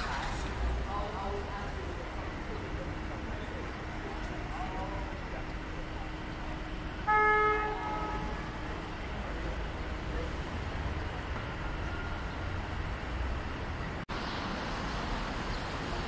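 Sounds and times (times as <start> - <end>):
street traffic rumble: 0.0 - 16.0
car horn toot: 7.0 - 8.8.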